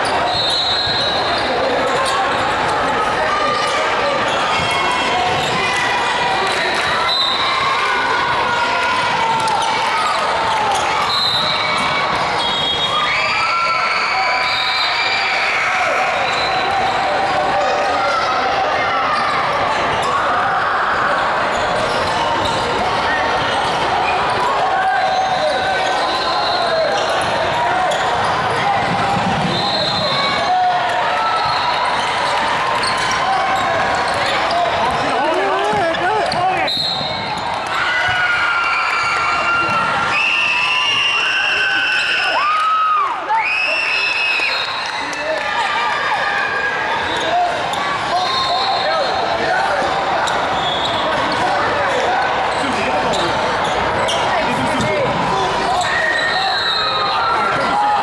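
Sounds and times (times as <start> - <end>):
many voices talking and calling: 0.0 - 58.0
basketballs bouncing on wooden floor: 34.0 - 37.5.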